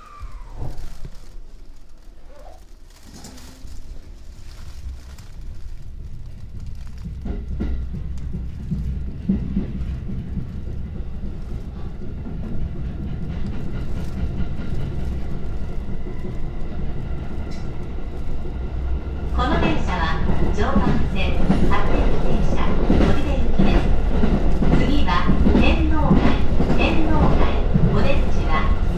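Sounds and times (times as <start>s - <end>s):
train running rumble: 0.0s - 28.9s
wheel clacks over rail joints: 0.3s - 16.7s.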